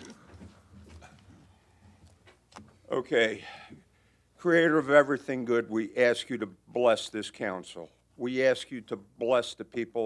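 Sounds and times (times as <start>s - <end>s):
people shuffling: 0.0s - 2.5s.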